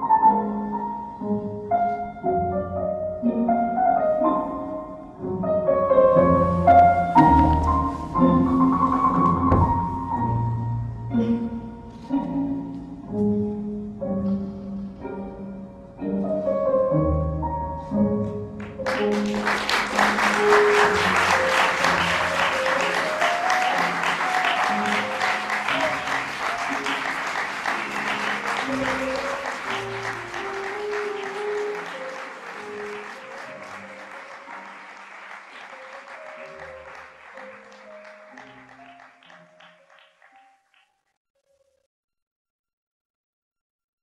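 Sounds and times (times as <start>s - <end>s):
slow instrumental music: 0.0s - 41.0s
audience applause: 18.6s - 40.8s.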